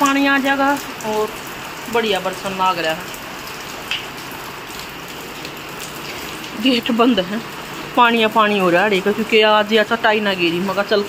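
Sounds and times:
rain on tiled walkway: 0:00.0 - 0:11.0.

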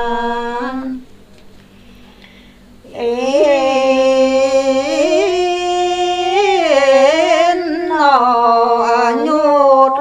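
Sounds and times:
woman singing a long note: 0:00.0 - 0:01.0, 0:02.8 - 0:10.0.

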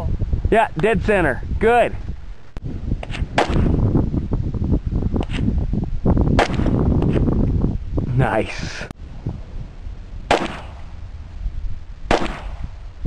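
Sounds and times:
rifle gunshots: 0:10.3 - 0:10.9, 0:12.1 - 0:12.6.

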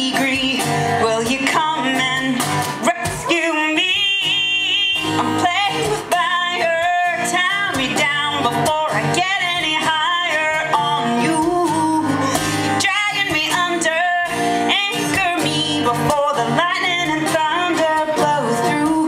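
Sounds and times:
acoustic guitar strumming: 0:00.0 - 0:19.0
woman singing: 0:00.0 - 0:19.0.

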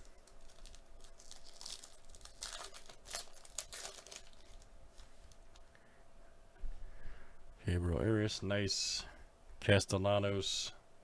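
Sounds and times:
foil wrapper crinkling: 0:00.0 - 0:05.5.

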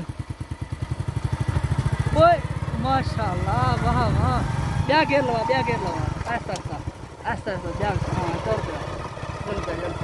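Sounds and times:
small motorcycle engine running: 0:00.0 - 0:10.0.

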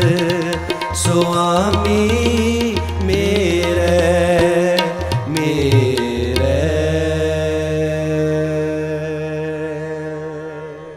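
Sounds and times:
tabla stroke: 0:00.0 - 0:07.5
harmonium: 0:00.0 - 0:10.9.

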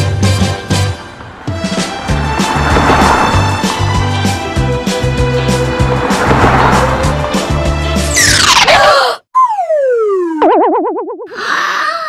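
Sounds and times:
wavering cartoon tone: 0:08.1 - 0:11.8
whistle tone sliding down: 0:09.3 - 0:11.0.

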